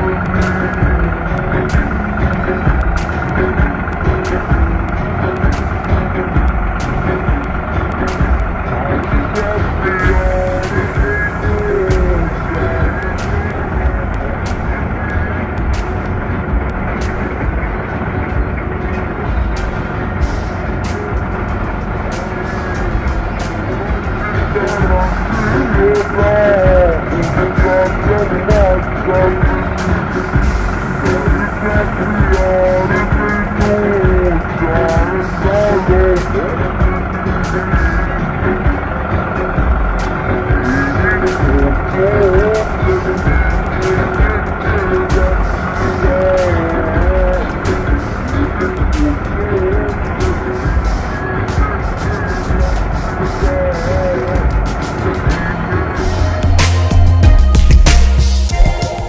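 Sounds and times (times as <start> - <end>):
beat of sharp clicks: 0.0 - 59.0
song with voice singing: 0.0 - 59.0
tractor engine running: 0.0 - 59.0.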